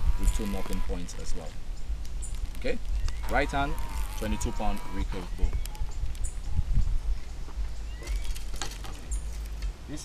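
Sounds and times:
wind rumble on microphone: 0.0s - 9.8s.

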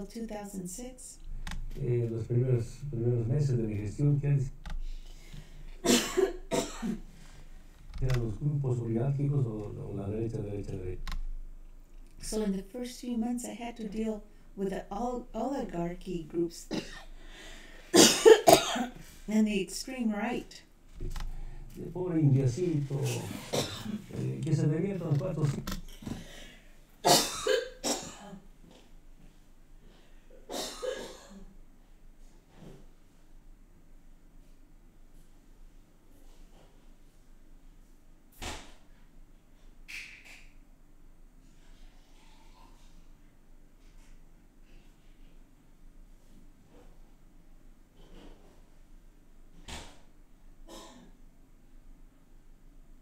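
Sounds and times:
person coughing: 5.8s - 7.0s, 16.7s - 17.2s, 18.0s - 19.0s, 23.2s - 24.1s, 27.0s - 28.4s, 30.5s - 31.5s, 50.7s - 51.2s.

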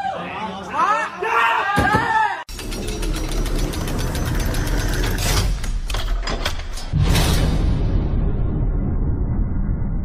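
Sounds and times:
vault door locking mechanism: 2.5s - 7.0s.

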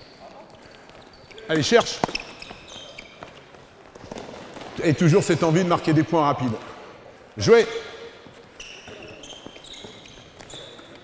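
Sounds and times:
footsteps on sports hall floor: 0.0s - 11.0s
man speaking: 7.4s - 8.1s.

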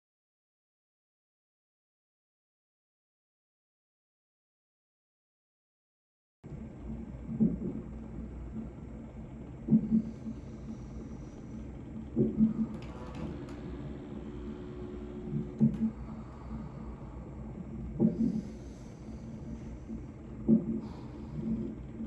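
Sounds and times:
steady low hum: 6.5s - 22.0s
woman breathing heavily: 15.1s - 22.0s.

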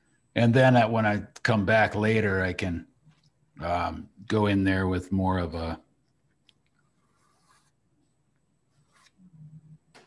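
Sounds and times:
pastel scratching on paper: 6.8s - 9.8s.

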